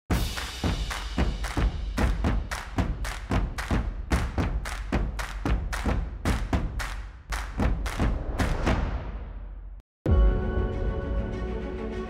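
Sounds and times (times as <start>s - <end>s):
heavy percussive thumps: 0.1s - 9.8s.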